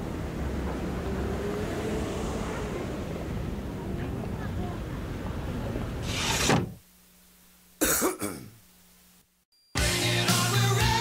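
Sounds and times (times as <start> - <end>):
throat clearing: 7.8 - 8.6.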